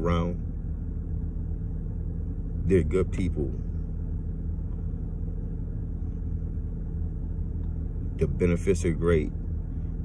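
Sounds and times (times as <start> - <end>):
car idling: 0.0 - 10.0.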